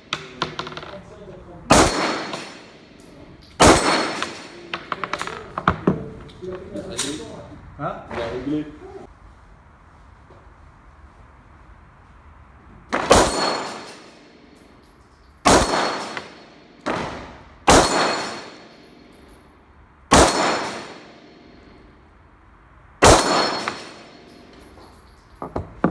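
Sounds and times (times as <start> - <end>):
pistol shots: 1.7 - 2.8, 3.6 - 4.6, 12.9 - 14.1, 15.4 - 18.7, 20.1 - 21.2, 23.0 - 24.3.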